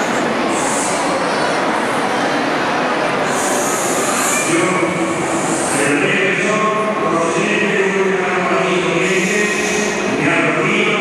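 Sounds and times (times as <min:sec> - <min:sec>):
echoing crowd noise: 0:00.0 - 0:11.0.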